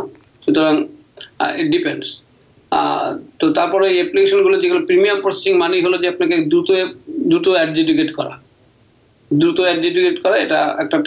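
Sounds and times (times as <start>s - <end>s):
man speaking: 0.0s - 8.4s, 9.3s - 11.0s
man's drawn-out hesitation sound: 0.0s - 8.5s.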